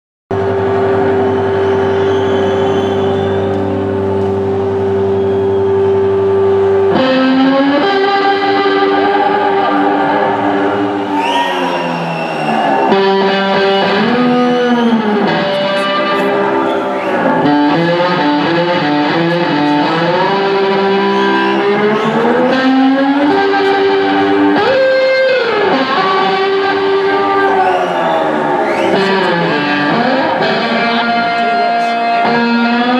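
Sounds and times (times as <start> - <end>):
distorted electric guitar: 0.3 - 32.9.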